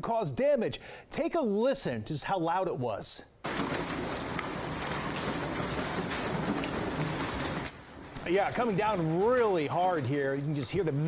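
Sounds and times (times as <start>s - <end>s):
hail clattering: 3.4s - 11.0s.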